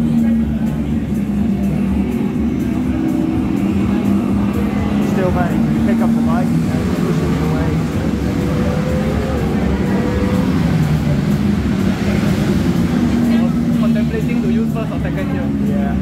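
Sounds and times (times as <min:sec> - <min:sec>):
motorcycle engine accelerating: 0:00.0 - 0:16.0
people talking: 0:00.0 - 0:16.0.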